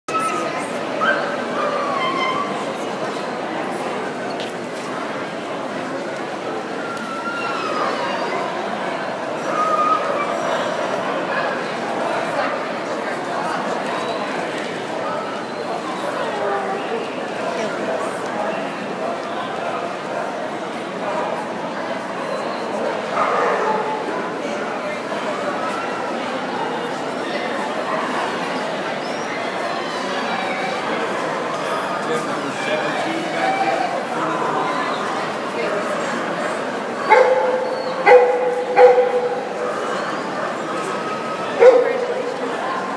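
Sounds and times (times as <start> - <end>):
crowd chatter: 0.0 - 42.9
dog whining: 37.0 - 40.2.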